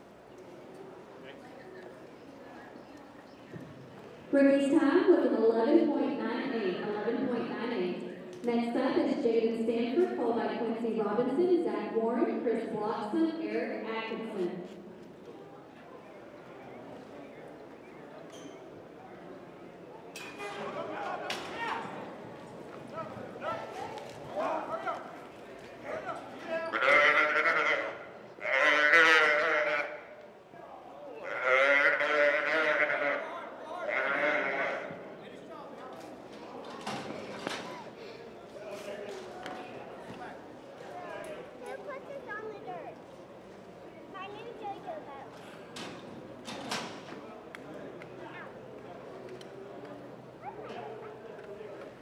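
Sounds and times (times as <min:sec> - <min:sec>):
calf bawling: 0:26.7 - 0:30.1, 0:31.2 - 0:34.9.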